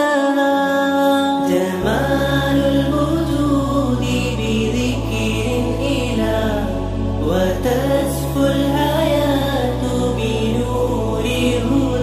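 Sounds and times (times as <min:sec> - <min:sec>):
person singing ornamented melody: 0:00.0 - 0:12.0
low drone: 0:01.3 - 0:12.0.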